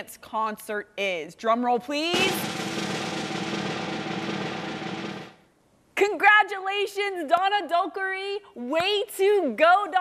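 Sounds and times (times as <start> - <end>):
snare drum roll: 2.1 - 5.4.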